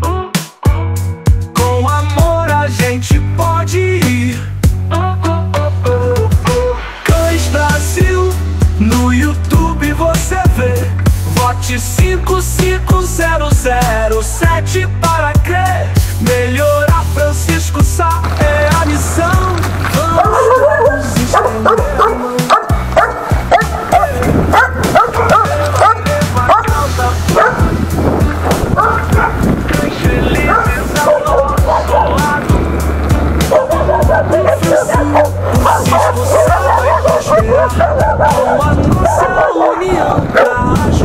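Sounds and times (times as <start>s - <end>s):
music with bass beat: 0.0s - 41.0s
dogs barking and yipping: 18.2s - 29.5s, 30.3s - 32.4s, 33.3s - 40.7s.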